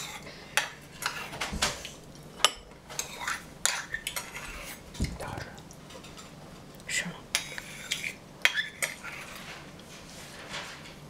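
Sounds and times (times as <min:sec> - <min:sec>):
spoon stirring pudding: 0:00.0 - 0:10.1.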